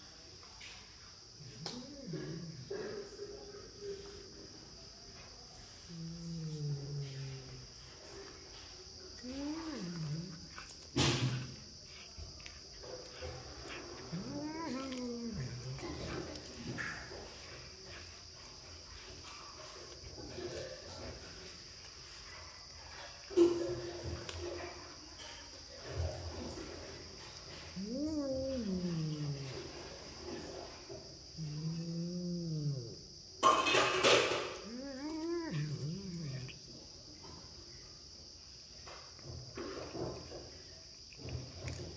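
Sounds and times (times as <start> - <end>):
cat growling: 1.4 - 4.6, 5.6 - 18.1, 25.8 - 36.8
cat hissing: 1.5 - 2.8, 9.2 - 17.6, 26.4 - 30.8, 31.4 - 33.0, 34.1 - 36.6
cat calling: 9.2 - 10.6, 13.6 - 16.3, 27.5 - 29.9, 34.5 - 36.6.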